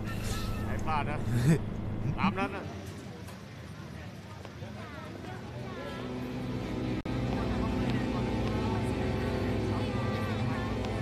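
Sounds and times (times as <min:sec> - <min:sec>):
traffic: 0:00.0 - 0:11.0
distant voices: 0:02.6 - 0:11.0
low film score drone: 0:05.6 - 0:11.0.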